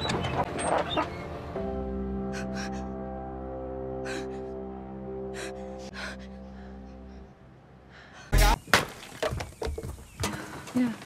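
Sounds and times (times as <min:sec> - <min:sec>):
sustained music chord: 0:01.3 - 0:07.8.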